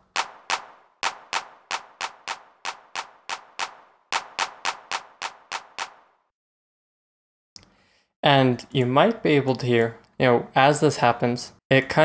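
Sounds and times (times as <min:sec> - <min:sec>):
drum machine hand claps: 0:00.0 - 0:06.0.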